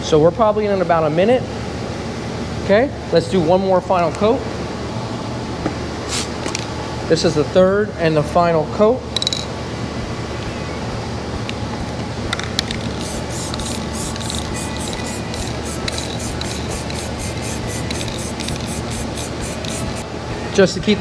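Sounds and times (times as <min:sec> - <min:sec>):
aerosol can spraying hiss: 0:12.9 - 0:20.0.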